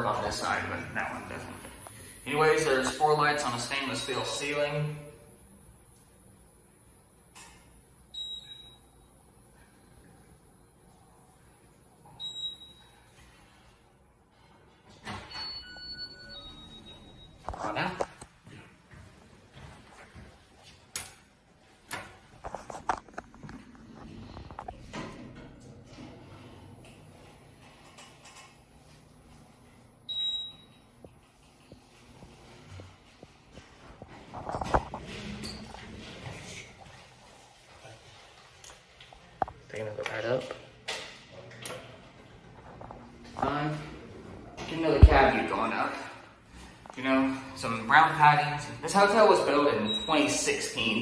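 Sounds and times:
faint elevator hum: 0.0s - 20.6s, 21.4s - 39.6s
elevator beep: 8.1s - 9.0s, 12.2s - 13.0s, 15.2s - 17.4s, 30.1s - 30.8s, 49.8s - 50.4s.

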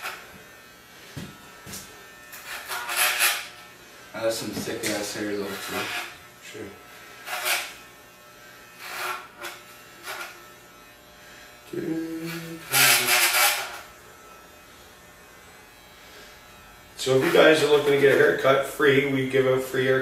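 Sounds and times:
electric hair clippers humming: 0.0s - 20.0s.

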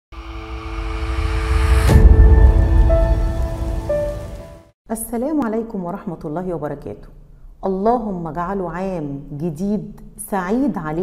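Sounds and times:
sharp hit: 0.1s - 4.7s
deep rumble: 0.2s - 4.6s.

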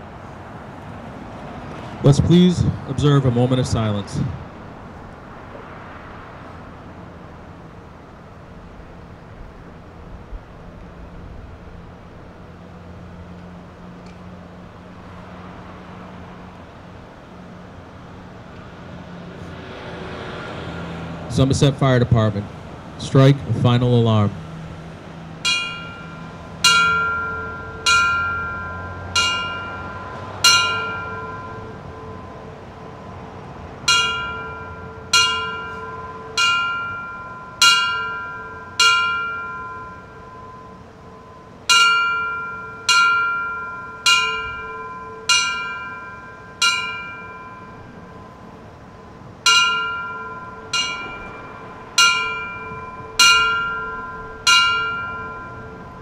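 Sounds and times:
fire bell ringing strikes: 25.4s - 56.0s.

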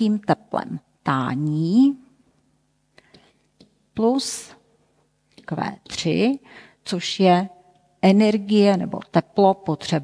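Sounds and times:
woman speaking: 0.0s - 2.2s, 4.0s - 4.7s, 5.4s - 10.0s.

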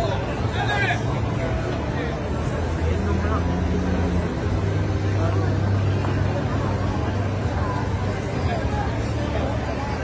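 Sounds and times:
crowd chatter: 0.0s - 10.0s
traffic engines rumbling: 0.0s - 10.0s.

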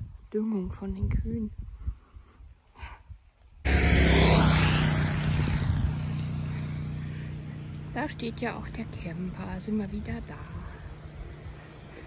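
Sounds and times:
propeller aircraft engine drone: 3.6s - 12.0s.

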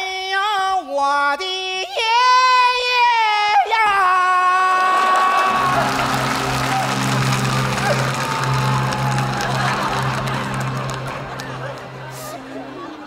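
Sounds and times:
man wailing: 1.8s - 6.0s
audience noise: 4.8s - 13.0s
background music with low note: 5.5s - 13.0s.

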